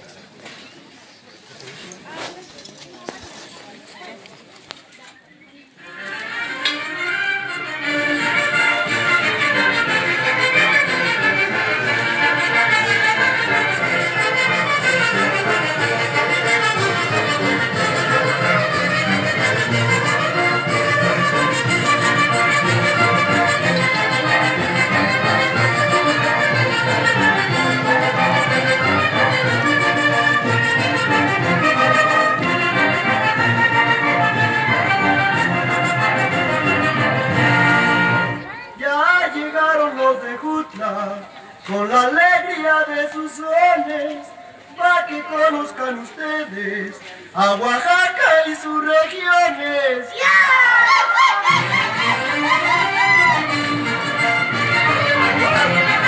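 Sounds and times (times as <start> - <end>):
brass band folk dance music: 5.8 - 41.1, 50.2 - 56.0.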